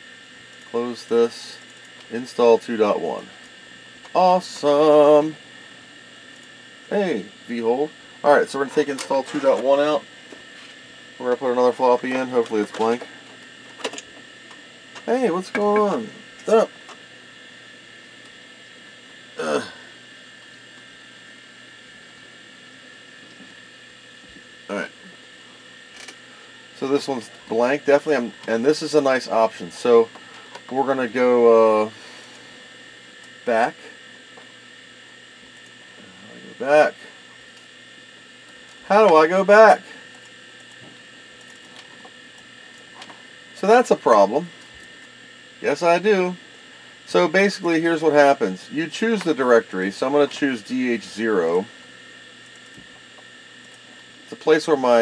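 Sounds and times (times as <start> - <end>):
steady background hum: 0.0 - 55.0.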